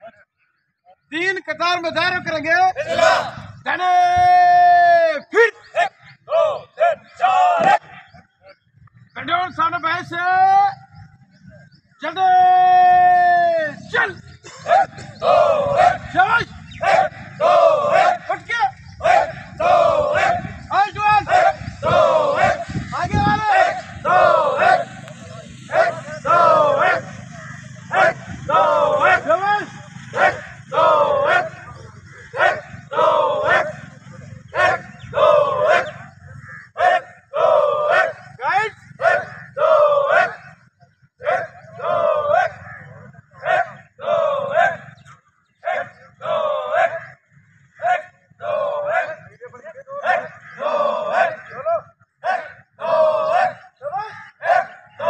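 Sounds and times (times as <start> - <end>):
shouted marching calls: 2.7 - 8.0, 12.0 - 55.0.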